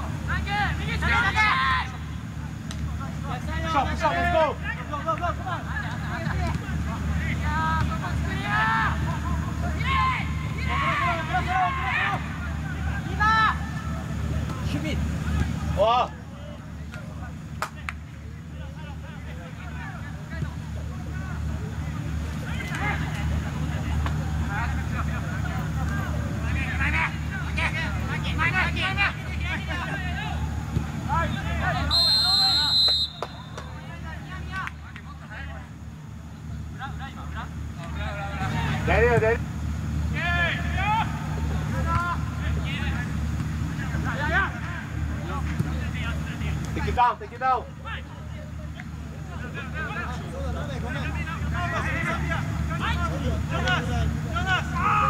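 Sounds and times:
players shouting: 0:00.0 - 0:55.0
referee's whistle blast: 0:31.9 - 0:33.8.

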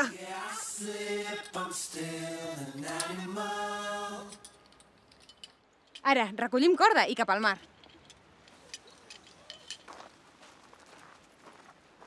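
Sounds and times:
person singing long notes: 0:00.0 - 0:04.4.

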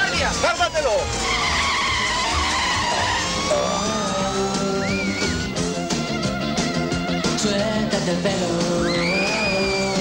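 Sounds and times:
tyres squealing: 0:00.0 - 0:05.5
music: 0:00.0 - 0:10.0.

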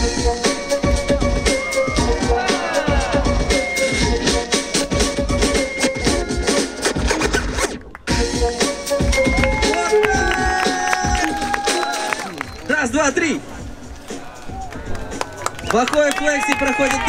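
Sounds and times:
hip-hop break music: 0:00.0 - 0:12.4
turntable scratching: 0:06.5 - 0:07.8.

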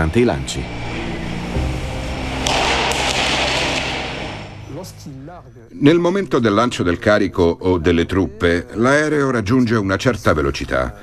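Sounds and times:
flare cracking: 0:00.7 - 0:05.3.

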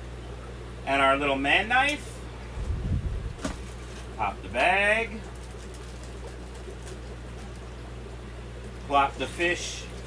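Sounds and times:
low equipment hum: 0:00.0 - 0:10.0.

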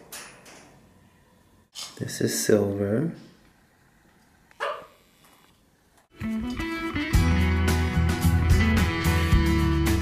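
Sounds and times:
animal bark or squawk: 0:04.6 - 0:05.0.

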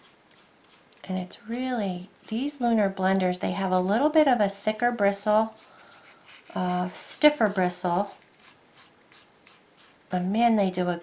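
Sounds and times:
brush scratching on wood: 0:00.0 - 0:02.8, 0:05.4 - 0:07.3, 0:07.9 - 0:10.2.

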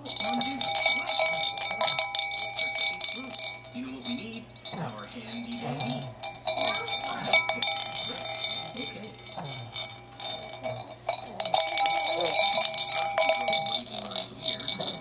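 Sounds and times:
toy handbell jangling: 0:00.0 - 0:15.0.

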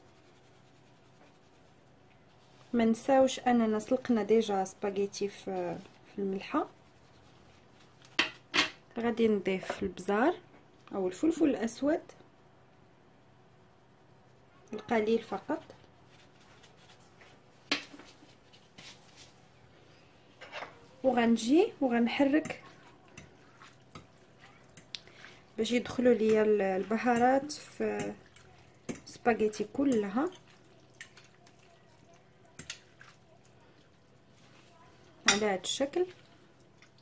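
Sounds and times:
wet squishing of spaghetti: 0:22.2 - 0:37.0.

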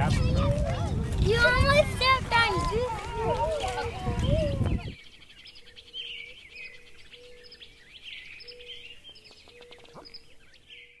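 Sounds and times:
small birds chirping: 0:02.5 - 0:11.0.

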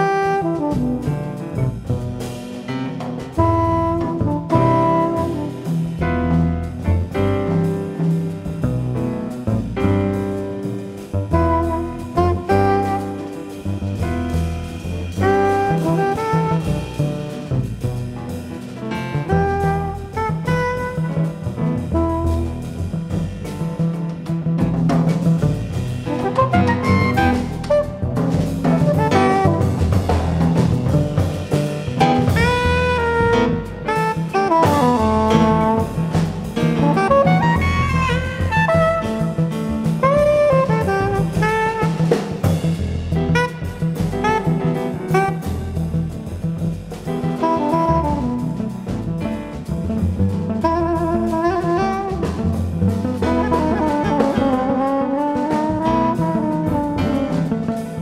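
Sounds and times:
soprano saxophone: 0:00.0 - 0:01.4, 0:03.4 - 0:06.0, 0:11.4 - 0:13.6, 0:15.0 - 0:17.4, 0:19.2 - 0:22.9, 0:26.2 - 0:30.5, 0:32.2 - 0:42.7, 0:43.3 - 0:46.0, 0:47.4 - 0:49.7, 0:50.5 - 0:58.0
live jazz group playing: 0:00.0 - 0:58.0.

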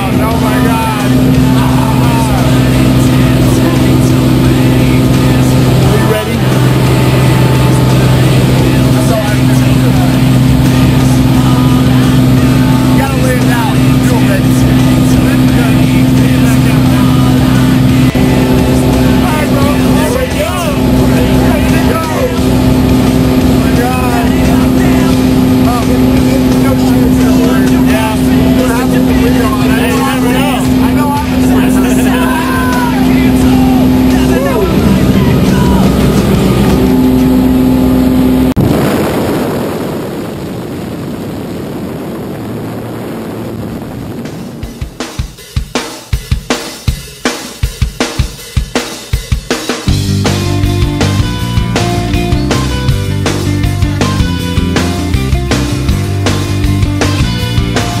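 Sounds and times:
propeller engine droning: 0:00.0 - 0:45.4, 0:49.8 - 0:58.0.

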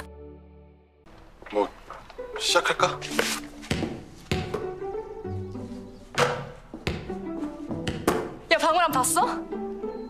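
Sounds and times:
background music with held notes: 0:00.0 - 0:10.0
basketball bouncing on wooden floor: 0:03.7 - 0:04.7, 0:06.2 - 0:08.4.

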